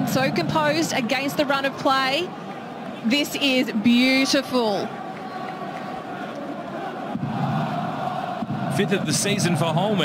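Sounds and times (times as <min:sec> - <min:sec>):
stadium crowd din: 0:00.0 - 0:10.0.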